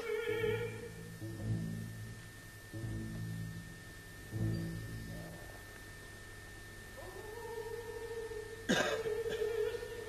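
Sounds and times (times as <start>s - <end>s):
loud cough: 8.7s - 9.5s.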